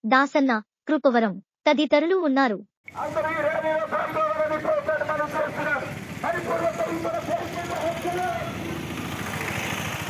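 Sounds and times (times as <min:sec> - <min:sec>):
vehicle engine running: 0:02.9 - 0:10.0.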